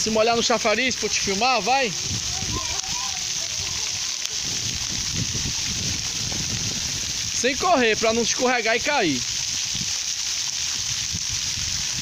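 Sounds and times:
water fountain spattering on pavement: 0:00.0 - 0:12.0.

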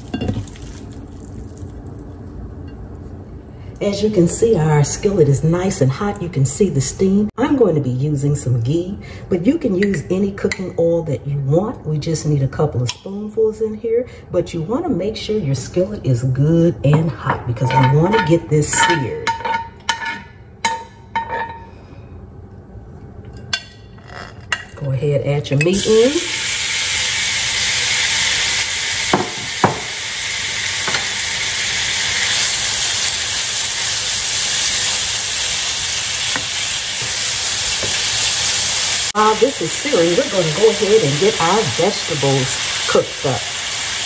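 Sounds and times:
low steady hum: 0:00.0 - 0:28.0
metal spoon clinking on skillet: 0:17.6 - 0:21.6.

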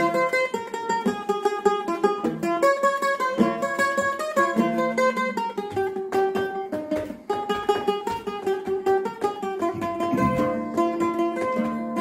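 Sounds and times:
guitar picking single notes: 0:00.0 - 0:12.0.

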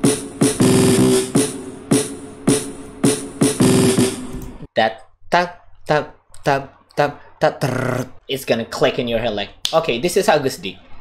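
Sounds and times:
fast drum roll: 0:00.0 - 0:04.3
hip-hop drum pattern: 0:00.0 - 0:04.7.

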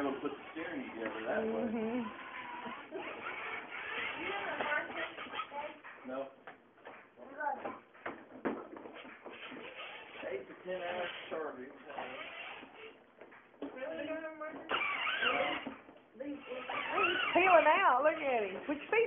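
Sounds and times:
people talking indistinctly: 0:00.0 - 0:07.9, 0:09.4 - 0:13.0, 0:13.6 - 0:19.0.

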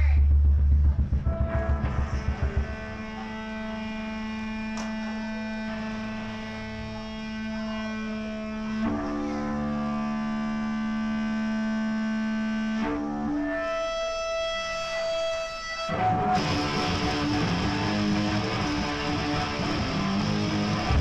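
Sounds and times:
electric guitars and bass chords: 0:00.0 - 0:21.0.

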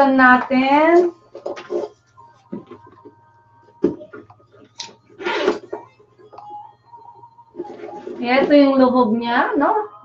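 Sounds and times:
bag handling sounds: 0:03.8 - 0:05.9
zipper being pulled open: 0:05.2 - 0:05.6.

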